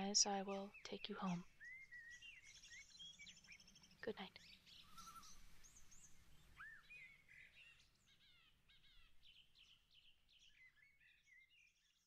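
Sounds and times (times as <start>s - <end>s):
birds chirping and whistling: 0.4s - 11.8s.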